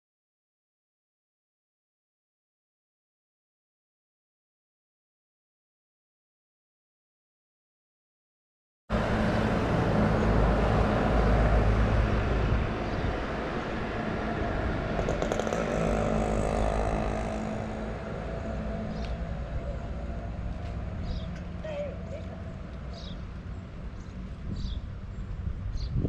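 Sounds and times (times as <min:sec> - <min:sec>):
wind rumbling on microphone: 0:09.0 - 0:21.6, 0:23.9 - 0:26.0.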